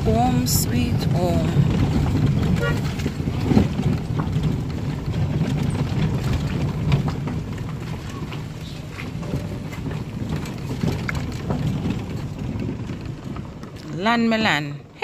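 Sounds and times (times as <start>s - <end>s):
knocks and rattles: 0.0s - 14.7s
tyres and engine rumble: 0.0s - 15.0s.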